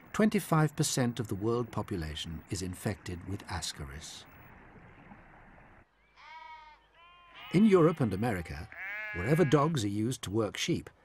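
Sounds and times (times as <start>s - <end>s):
sheep bleating: 6.1s - 9.7s.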